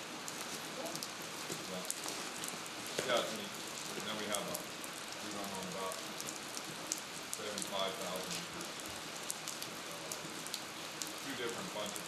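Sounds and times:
rain on a hard surface: 0.0 - 12.0.

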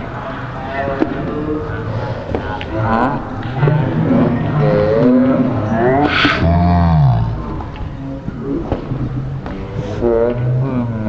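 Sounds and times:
faint voices: 0.0 - 11.0
traffic rumble: 0.0 - 11.0.

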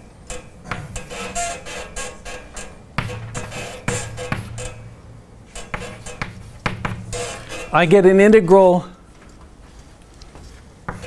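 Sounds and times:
chalk scratching on blackboard: 5.6 - 7.8.

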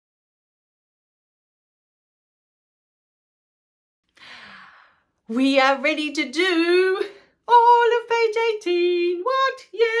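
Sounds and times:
woman gasping: 4.1 - 5.2.

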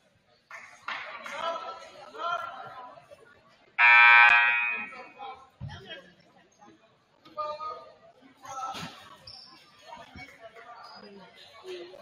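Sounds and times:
scoreboard horn buzz: 3.8 - 4.9.

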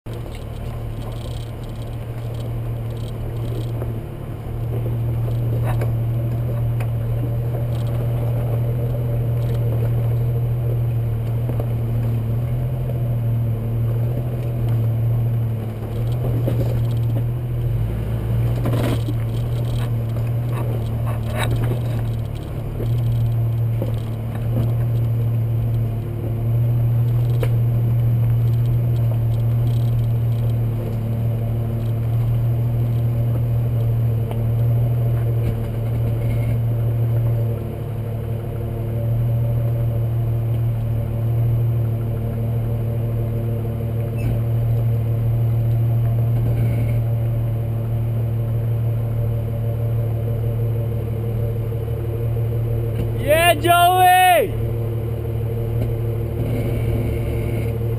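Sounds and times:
car engine droning: 0.0 - 57.9
rocks rattling under tyres: 0.1 - 47.3.

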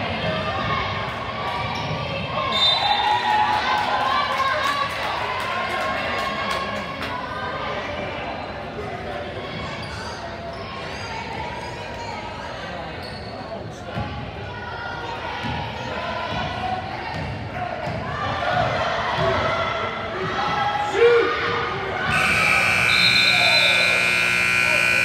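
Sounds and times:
crowd chatter: 0.0 - 25.0
scoreboard buzzer tone: 22.1 - 25.0.

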